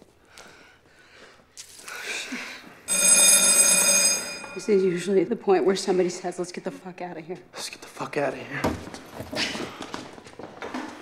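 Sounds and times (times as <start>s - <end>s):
electric bell ringing: 2.9s - 5.2s.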